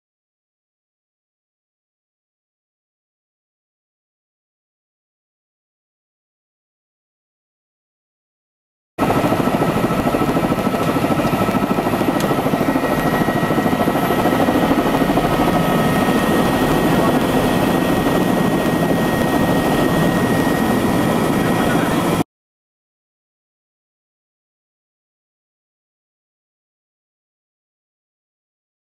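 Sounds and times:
helicopter rotor beat: 9.0s - 22.2s
high turbine whine: 9.0s - 22.2s.

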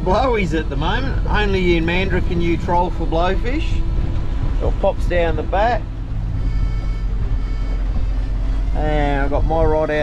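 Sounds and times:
outboard motor running: 0.0s - 10.0s
background music: 0.4s - 10.0s.

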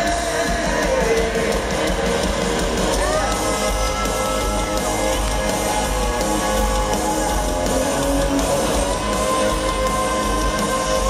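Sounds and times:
drum kit: 0.0s - 11.0s
electric guitars strumming: 0.0s - 11.0s.

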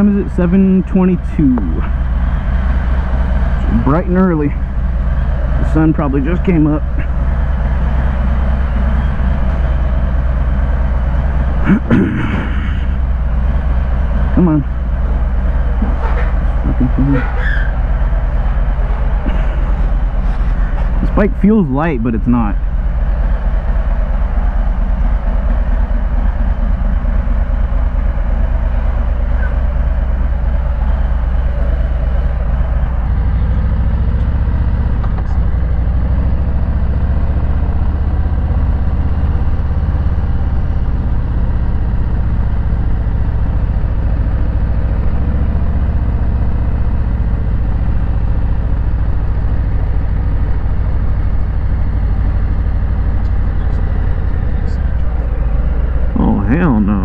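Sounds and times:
motorcycle engine running: 0.0s - 57.0s
road and wind noise: 0.0s - 57.0s.

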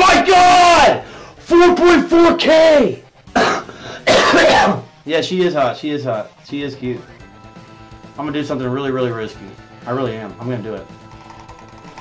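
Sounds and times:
man coughing: 3.3s - 4.9s.

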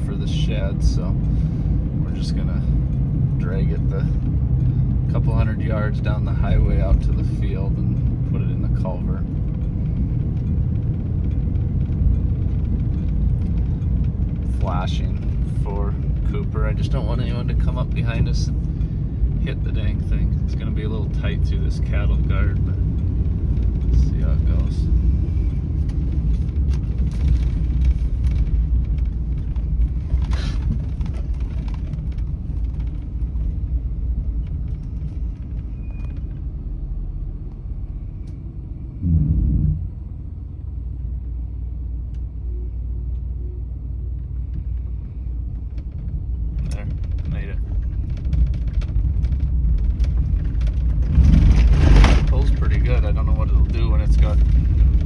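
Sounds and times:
vehicle engine rumbling: 0.0s - 55.0s.

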